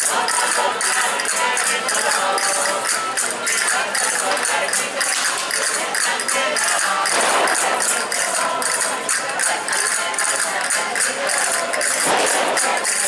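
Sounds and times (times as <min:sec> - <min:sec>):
hand percussion clicks: 0:00.0 - 0:13.0.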